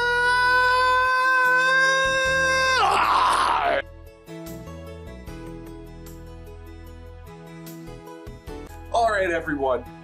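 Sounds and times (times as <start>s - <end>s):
man yelling: 0.0s - 3.8s
soft background music: 0.0s - 10.0s.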